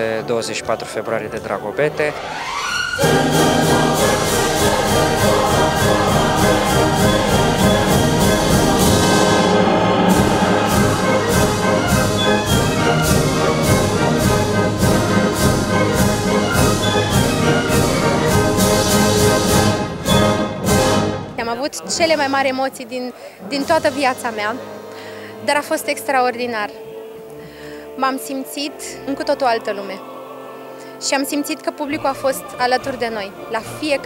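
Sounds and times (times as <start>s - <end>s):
orchestral opera music with brass: 0.0s - 34.0s
driving percussion beat: 3.0s - 21.1s.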